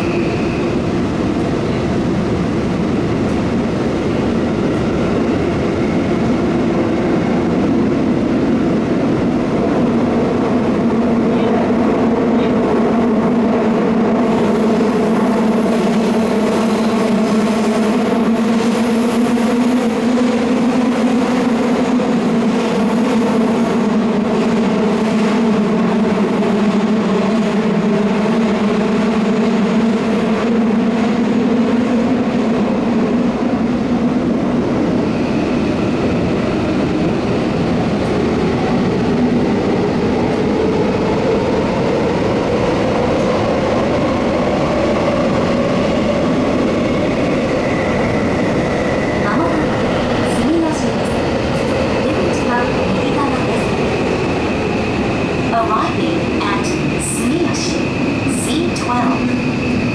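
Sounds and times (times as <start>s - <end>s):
subway train wheels rumbling: 0.0s - 59.9s.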